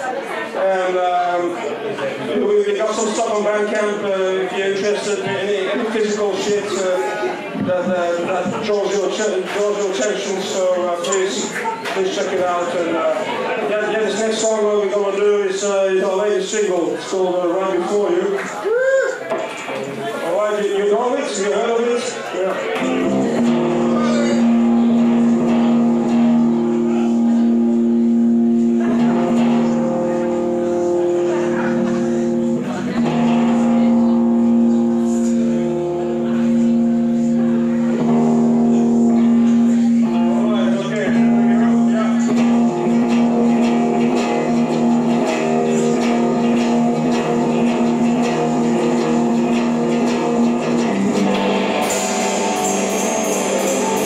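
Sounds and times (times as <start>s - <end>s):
drum kit: 22.8s - 54.0s
electric guitar droning chord: 22.8s - 54.0s.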